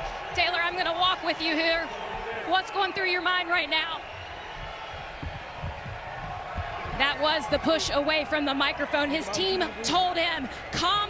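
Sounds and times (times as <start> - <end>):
crowd noise: 0.0 - 11.0
microphone thumps and rustles: 4.6 - 7.1.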